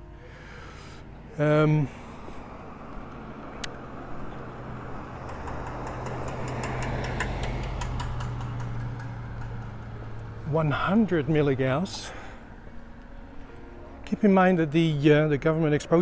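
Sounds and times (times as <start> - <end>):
car passing: 0.2 - 16.0.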